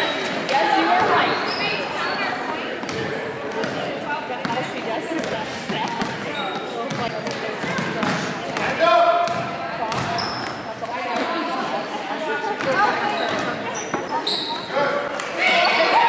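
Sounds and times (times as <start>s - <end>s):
voices of players and spectators: 0.0s - 16.0s
basketball bouncing on gym floor: 2.8s - 10.7s.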